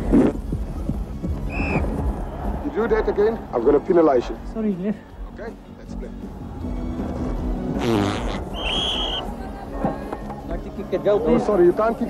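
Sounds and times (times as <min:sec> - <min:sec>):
background music: 0:00.0 - 0:12.0
raspy fart: 0:07.7 - 0:09.2
referee's whistle blast: 0:08.5 - 0:09.2.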